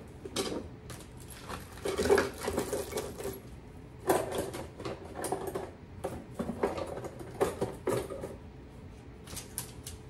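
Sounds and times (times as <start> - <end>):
items rattling in a drawer: 0.3 - 8.4.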